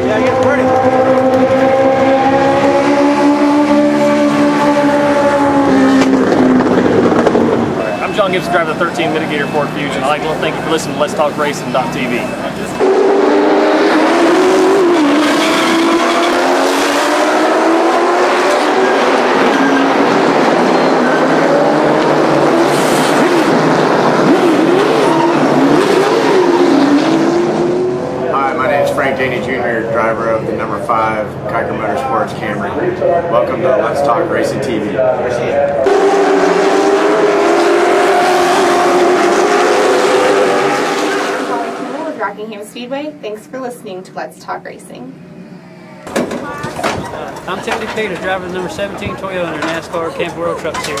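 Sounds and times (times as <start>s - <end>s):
tires spinning on pavement: 0.0s - 9.4s, 12.8s - 28.4s, 35.8s - 42.2s
car engine at high revs: 0.0s - 28.9s, 35.7s - 42.3s.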